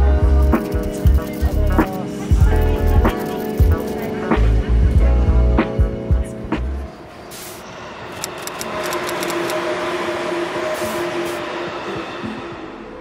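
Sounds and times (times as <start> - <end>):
electric train running: 0.6 - 4.1, 7.0 - 13.0.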